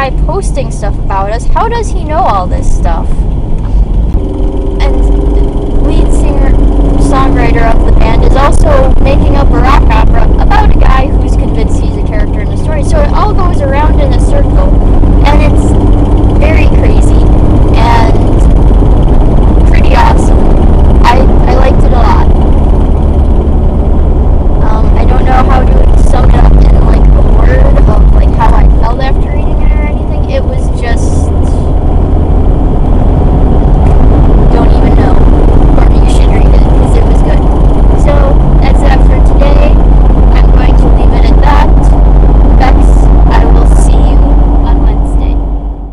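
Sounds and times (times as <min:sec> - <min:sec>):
car cabin road and engine rumble: 0:00.0 - 0:45.9.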